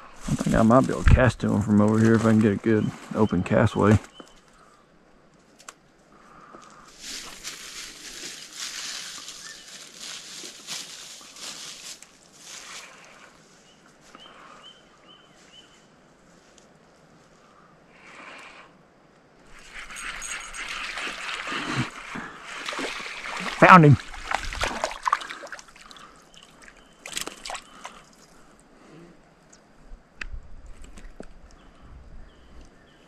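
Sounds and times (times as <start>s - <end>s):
fish splashing and thrashing: 19.5s - 28.4s
bird chirping: 26.0s - 28.0s.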